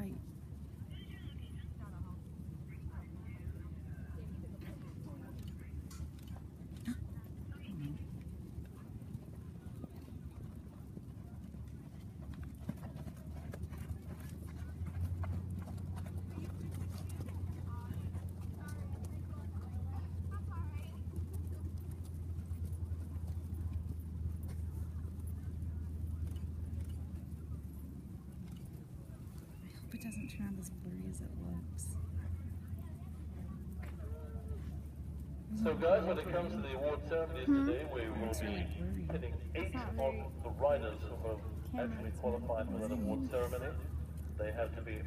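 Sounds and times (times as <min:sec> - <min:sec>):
faint voices: 0:00.0 - 0:45.0
hoofbeats on sand: 0:00.0 - 0:45.0
steady low hum: 0:00.0 - 0:45.0.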